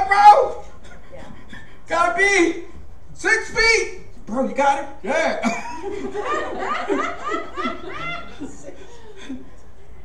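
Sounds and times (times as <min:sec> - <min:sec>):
rhythmic laughter: 0:05.4 - 0:09.6.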